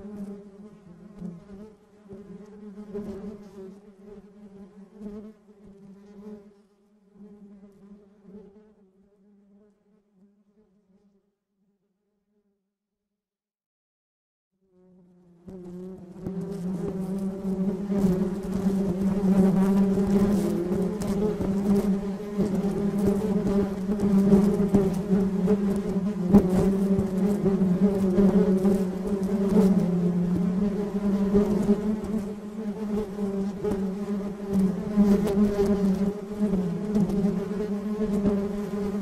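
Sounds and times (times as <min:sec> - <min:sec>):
honey bees buzzing: 0:15.5 - 0:39.0.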